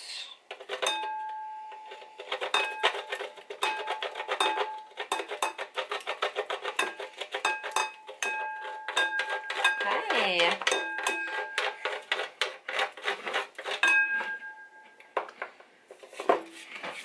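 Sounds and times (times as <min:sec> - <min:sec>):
metal grater ringing: 0:00.6 - 0:14.8
wax grated on metal grater: 0:01.8 - 0:14.3.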